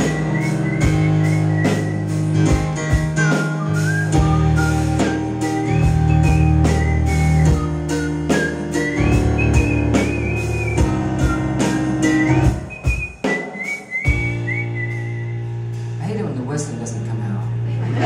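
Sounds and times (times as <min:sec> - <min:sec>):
man whistling melody: 0:00.0 - 0:02.4, 0:03.2 - 0:15.8
live band playing: 0:00.0 - 0:18.0.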